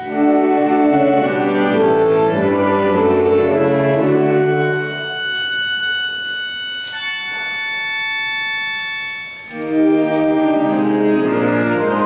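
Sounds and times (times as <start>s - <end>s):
reed instruments holding chords: 0.0s - 12.0s.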